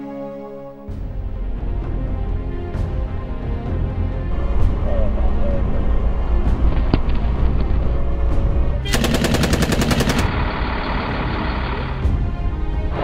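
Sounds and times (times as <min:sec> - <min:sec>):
steady low rumble: 0:03.8 - 0:08.8
automatic gunfire: 0:08.8 - 0:10.4.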